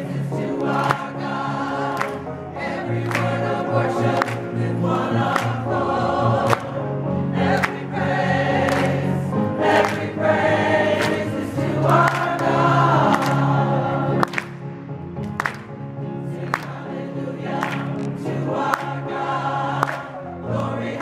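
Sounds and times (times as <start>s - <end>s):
choir singing: 0.0s - 14.6s, 16.1s - 21.0s
hands clapping on the beat: 0.5s - 1.2s, 1.8s - 2.3s, 3.0s - 5.6s, 6.4s - 6.8s, 7.5s - 7.9s, 8.6s - 13.6s, 14.2s - 14.6s, 15.2s - 15.8s, 16.4s - 16.8s, 17.5s - 19.0s, 19.8s - 21.0s.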